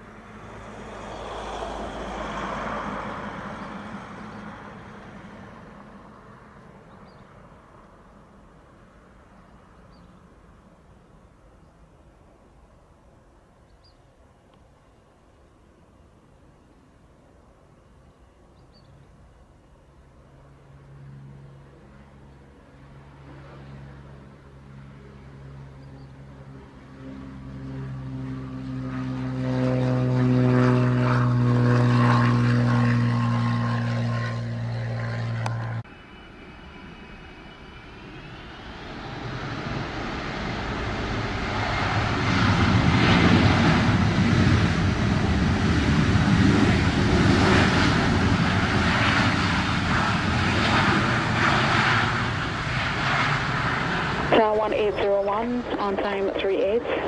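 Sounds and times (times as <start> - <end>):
jet engines roaring in reverse thrust: 0.0 - 9.2, 20.2 - 57.0
propeller plane droning: 0.0 - 57.0
rising jet whine: 26.8 - 57.0.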